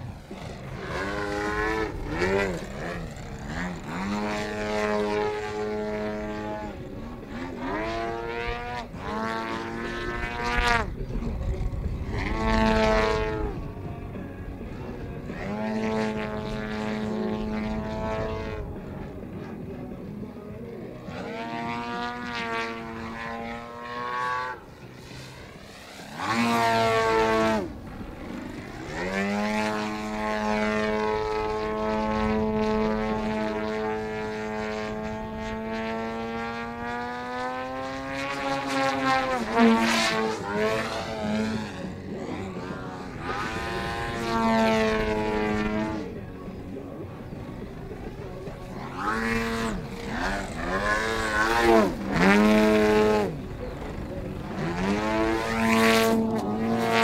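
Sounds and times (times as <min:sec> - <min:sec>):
model plane engine revving: 0:00.0 - 0:57.0.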